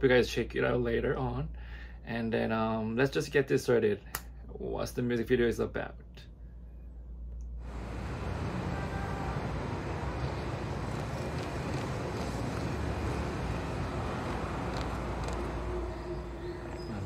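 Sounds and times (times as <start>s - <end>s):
road traffic rumble: 7.6s - 17.0s.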